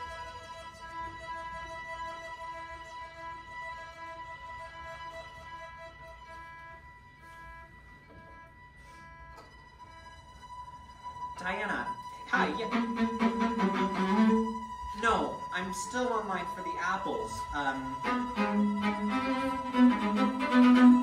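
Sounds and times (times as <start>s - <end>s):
violins playing softly: 0.0s - 21.0s.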